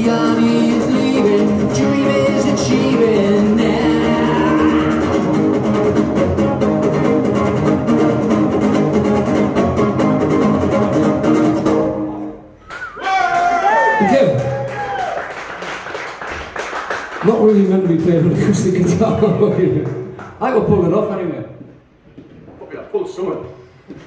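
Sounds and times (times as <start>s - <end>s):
person singing: 0.0s - 5.4s
acoustic guitars strumming: 0.0s - 12.3s.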